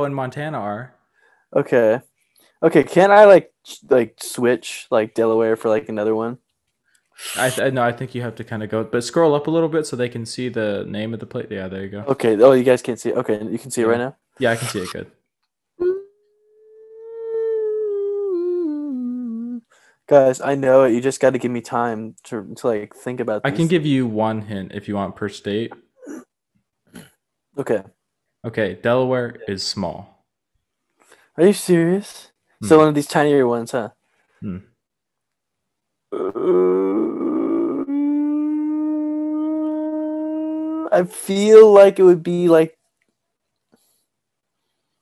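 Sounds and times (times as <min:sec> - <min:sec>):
man humming: 0:07.2 - 0:12.7, 0:14.4 - 0:15.0, 0:16.8 - 0:26.2, 0:36.2 - 0:42.6.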